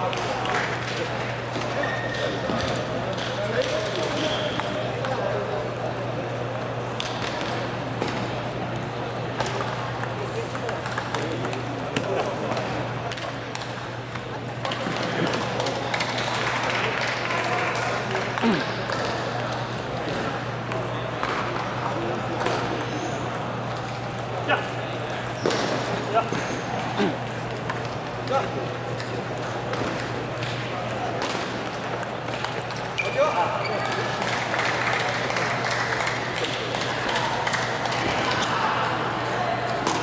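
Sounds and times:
background chatter: 0:00.0 - 0:40.0
murmuring voices: 0:17.4 - 0:31.4.

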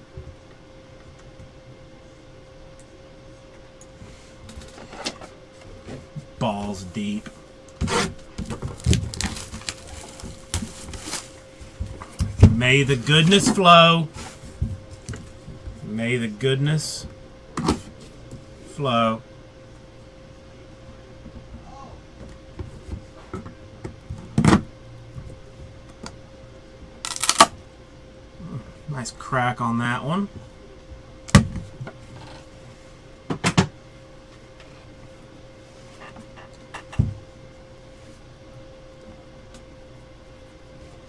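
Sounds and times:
plastic shrink wrap crinkling: 0:08.4 - 0:11.4, 0:27.1 - 0:27.5.

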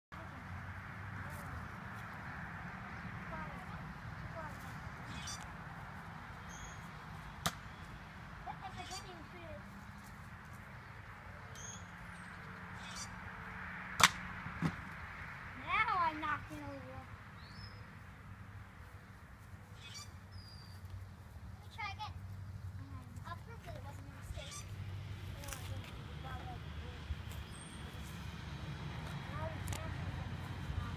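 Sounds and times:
bird chirps: 0:04.8 - 0:05.5, 0:06.4 - 0:09.3, 0:10.8 - 0:13.2, 0:17.4 - 0:18.0, 0:19.6 - 0:21.1, 0:24.3 - 0:24.8.

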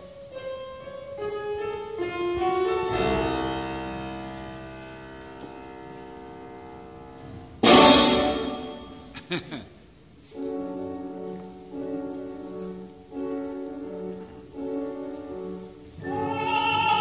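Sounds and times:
symphony orchestra playing: 0:01.8 - 0:09.1.

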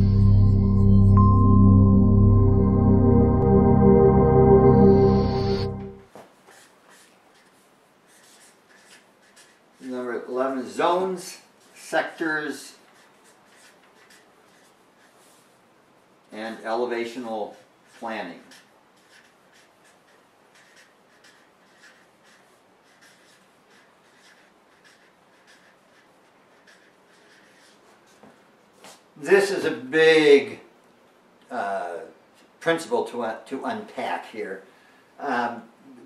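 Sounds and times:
marker writing on paper: 0:06.5 - 0:10.1, 0:11.6 - 0:15.5, 0:17.5 - 0:28.4.

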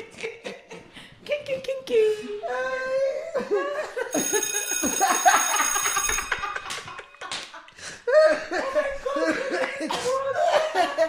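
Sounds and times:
men laughing: 0:02.9 - 0:11.0
high steady ringing tone: 0:04.1 - 0:07.2.

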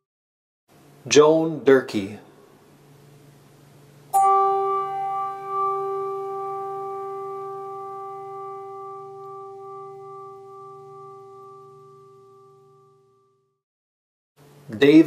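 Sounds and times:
faint low hum: 0:00.8 - 0:13.5
bell ringing: 0:04.2 - 0:13.0.

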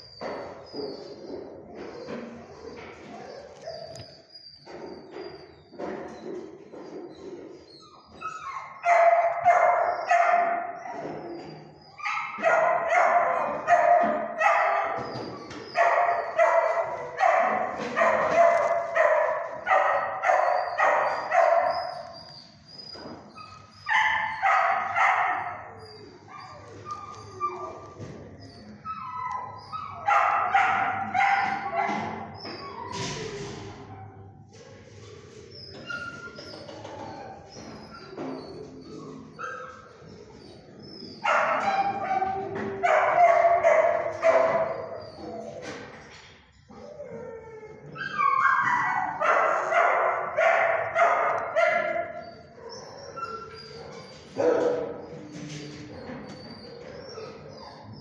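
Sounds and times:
dog barking: 0:08.8 - 0:11.1, 0:12.0 - 0:22.0, 0:23.9 - 0:25.7, 0:29.9 - 0:32.1, 0:41.2 - 0:45.1, 0:48.2 - 0:52.8, 0:53.8 - 0:55.2.

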